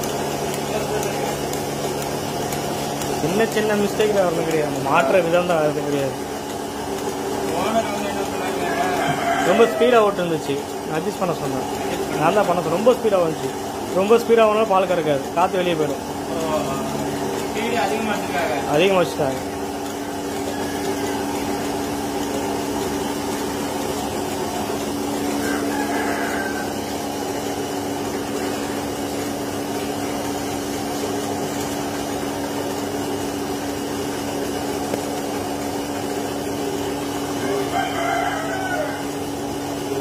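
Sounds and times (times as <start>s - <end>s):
vacuum pump humming: 0.0s - 40.0s.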